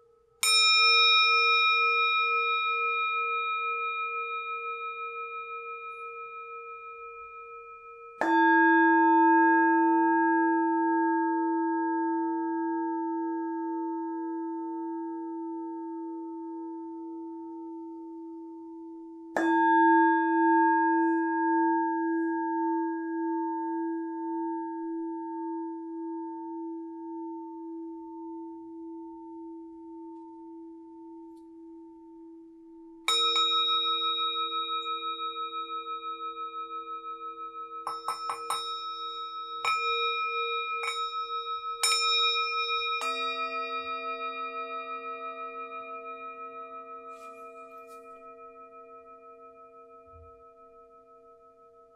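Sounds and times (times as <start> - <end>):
singing bowls ringing: 0.0 - 51.9.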